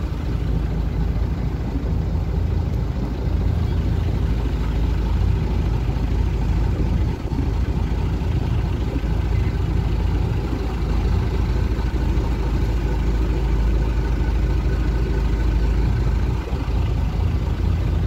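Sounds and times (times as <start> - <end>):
boat engine rumbling: 0.0 - 18.0.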